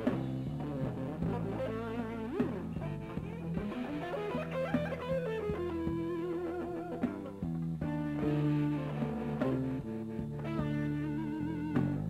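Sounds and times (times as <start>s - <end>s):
bass accompaniment: 0.0s - 12.0s
electric blues guitar lead: 0.0s - 12.0s.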